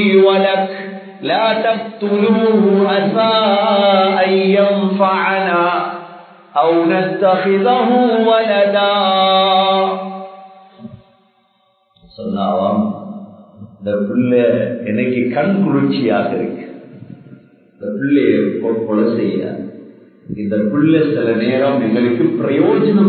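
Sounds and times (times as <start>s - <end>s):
man chanting: 0.0s - 10.2s, 12.1s - 19.6s, 20.3s - 23.0s
man speaking: 12.1s - 13.0s, 13.6s - 16.7s, 17.8s - 19.6s, 20.3s - 23.0s.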